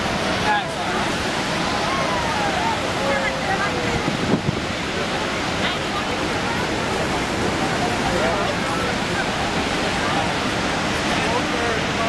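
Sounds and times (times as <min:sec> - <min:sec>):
waterfall roaring: 0:00.0 - 0:12.0.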